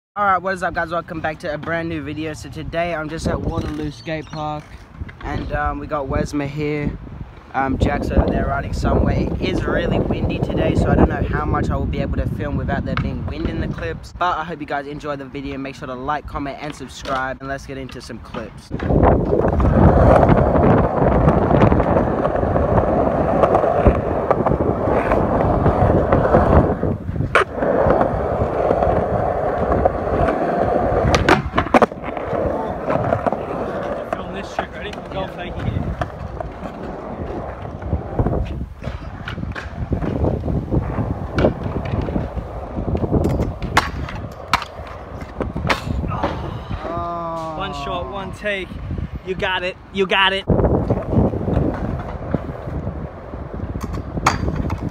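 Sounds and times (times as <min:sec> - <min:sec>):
skateboard wheels rolling on concrete: 0:00.2 - 0:54.9
skateboard clacking: 0:16.6 - 0:46.9, 0:50.8 - 0:54.9.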